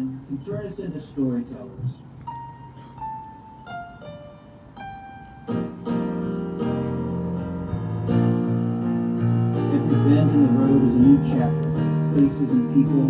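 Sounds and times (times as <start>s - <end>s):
keyboard notes: 2.1s - 13.0s
sustained chords: 2.3s - 13.0s.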